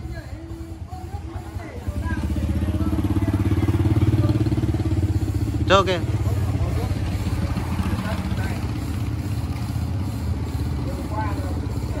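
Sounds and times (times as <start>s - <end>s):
motorbike engine idling: 0.0s - 12.0s.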